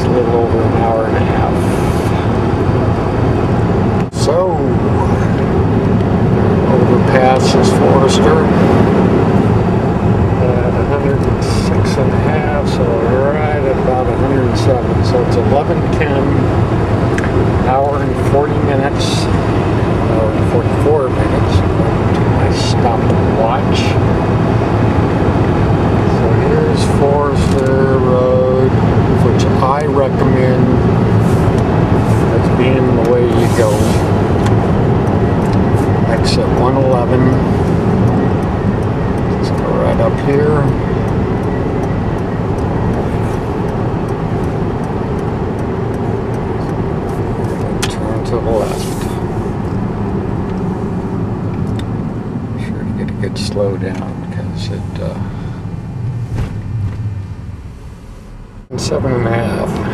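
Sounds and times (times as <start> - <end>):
car engine and road drone: 0.0 - 59.9.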